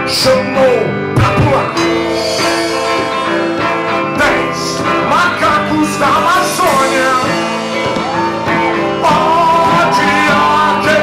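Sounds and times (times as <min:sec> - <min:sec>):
live rock band playing: 0:00.0 - 0:11.0
person singing: 0:00.4 - 0:11.0.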